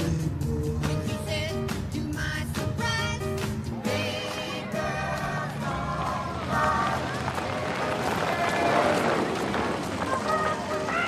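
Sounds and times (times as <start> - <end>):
crowd chatter: 3.7 - 11.0
crowd movement noise: 3.7 - 11.0.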